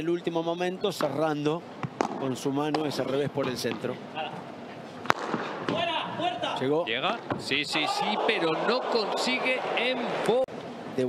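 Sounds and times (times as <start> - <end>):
padel racket striking ball: 1.8 - 2.9, 5.0 - 5.9
man talking: 2.2 - 4.5, 5.7 - 11.0.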